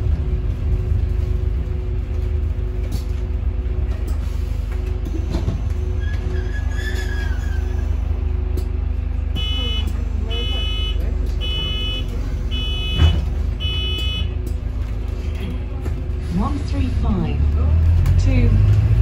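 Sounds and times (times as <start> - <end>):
bus engine rumble: 0.0 - 19.0.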